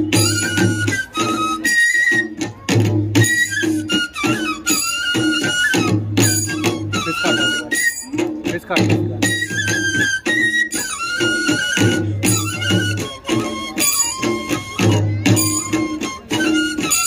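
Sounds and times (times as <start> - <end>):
high wavering flute melody: 0.0 - 17.0
sharp percussion strokes: 0.0 - 17.0
barrel drum beating: 5.2 - 10.6.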